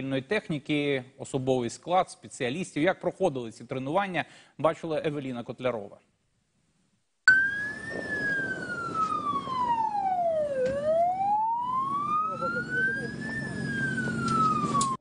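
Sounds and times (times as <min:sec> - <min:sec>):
low background noise: 0:00.0 - 0:15.0
emergency siren wailing: 0:07.3 - 0:15.0.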